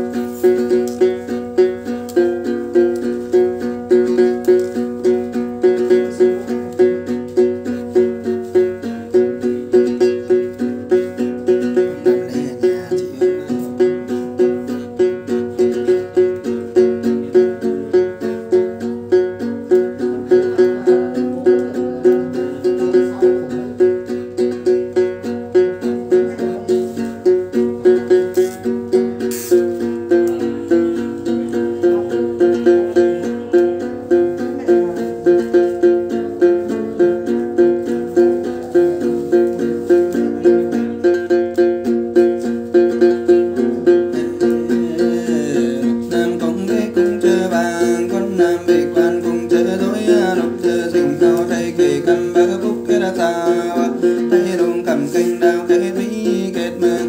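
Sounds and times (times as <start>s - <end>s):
long-necked lute plucked notes: 0.0s - 57.0s.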